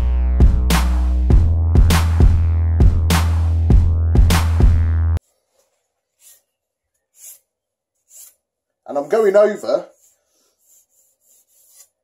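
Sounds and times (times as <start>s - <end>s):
electronic music: 0.0s - 5.2s
knife scraping a protective sleeve: 6.1s - 8.5s, 9.9s - 12.0s.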